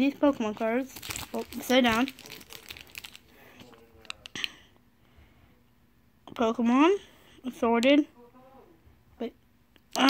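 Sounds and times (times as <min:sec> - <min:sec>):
plastic bag crinkling: 0:00.3 - 0:04.2.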